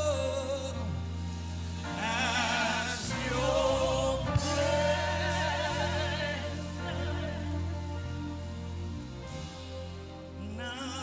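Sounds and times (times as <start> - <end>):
gospel worship singing: 0.0 - 11.0
sustained low accompaniment: 0.0 - 11.0.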